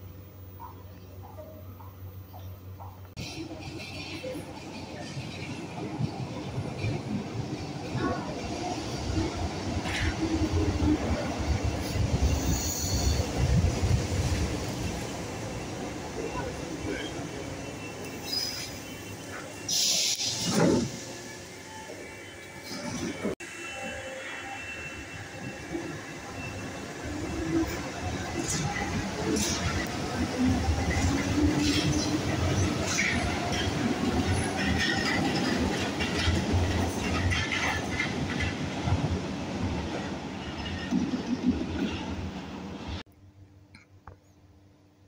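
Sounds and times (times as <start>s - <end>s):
train air hiss: 12.0s - 14.2s, 18.2s - 21.9s.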